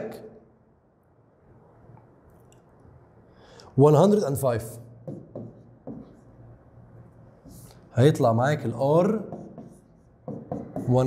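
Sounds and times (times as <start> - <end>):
stylus tapping and scratching on screen: 5.1 - 6.4, 9.0 - 11.0.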